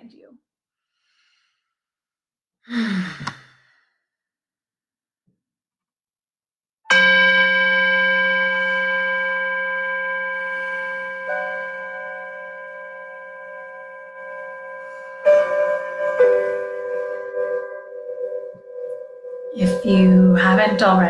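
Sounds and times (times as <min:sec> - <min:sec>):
meditation bell ringing: 0:06.9 - 0:21.0.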